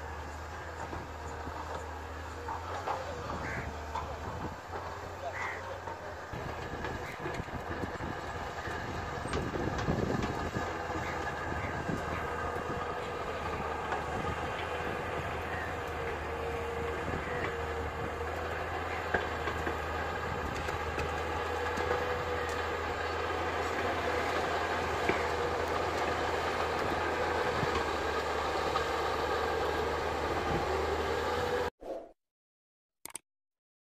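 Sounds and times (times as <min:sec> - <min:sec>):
excavator diesel engine running: 0:00.0 - 0:31.7.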